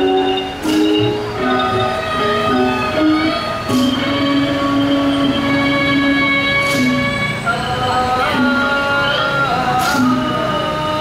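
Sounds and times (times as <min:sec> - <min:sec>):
traditional classical music: 0:00.0 - 0:11.0.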